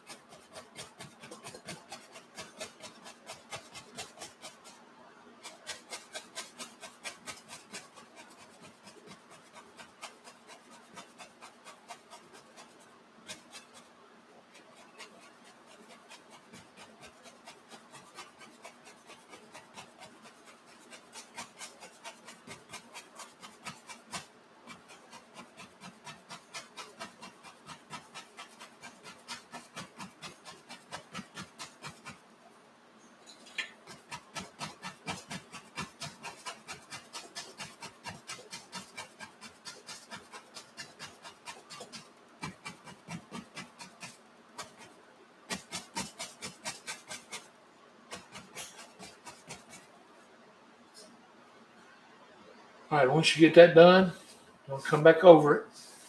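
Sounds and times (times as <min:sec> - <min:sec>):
brush tapping on canvas: 0:00.0 - 0:04.8, 0:05.4 - 0:13.9, 0:14.5 - 0:32.2, 0:33.5 - 0:49.9.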